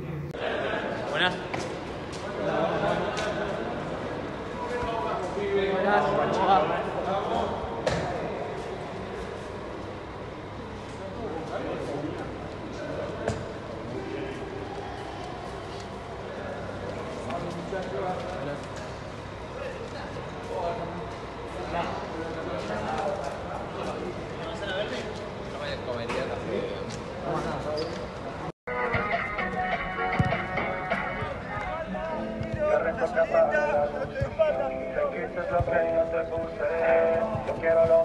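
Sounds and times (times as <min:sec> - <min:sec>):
people talking indistinctly: 0:30.1 - 0:38.0.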